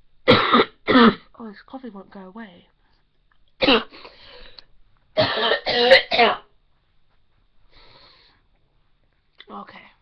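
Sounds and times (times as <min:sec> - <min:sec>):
woman coughing: 0:00.3 - 0:01.3, 0:03.6 - 0:04.0, 0:05.2 - 0:06.5.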